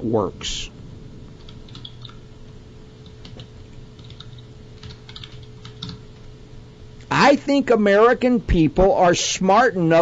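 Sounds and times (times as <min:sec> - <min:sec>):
steady low hum: 0:00.0 - 0:10.0
typing on computer keyboard: 0:01.4 - 0:02.2, 0:03.1 - 0:06.0.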